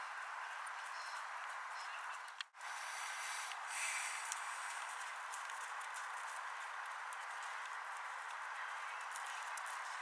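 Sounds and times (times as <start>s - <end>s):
steady background hiss: 0.0s - 10.0s
horse hooves trotting on sand: 3.0s - 10.0s.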